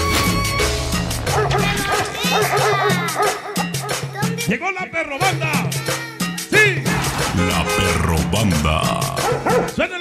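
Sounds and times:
dog barking sound effect: 1.3s - 4.4s, 8.9s - 9.8s
dance-band music: 6.5s - 9.8s.

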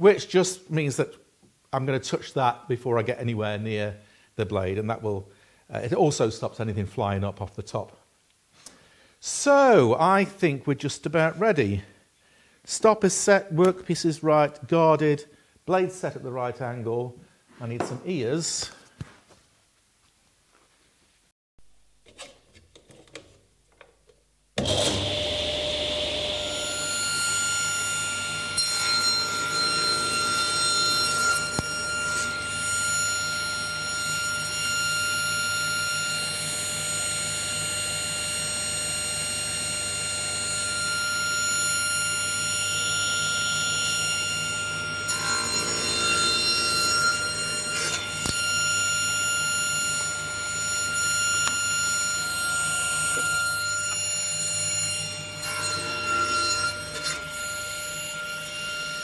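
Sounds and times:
saw blade cutting wood: 24.6s - 59.0s
table saw whine: 24.6s - 59.0s.

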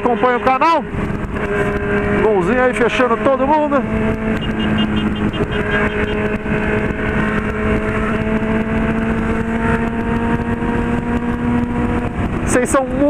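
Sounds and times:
motorcycle engine at speed: 0.0s - 13.0s
wind noise on microphone: 0.8s - 2.4s, 3.7s - 13.0s.

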